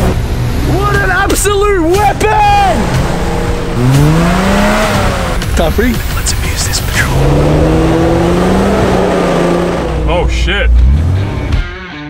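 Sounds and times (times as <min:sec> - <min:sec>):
engine rumbling under load: 0:00.0 - 0:11.6.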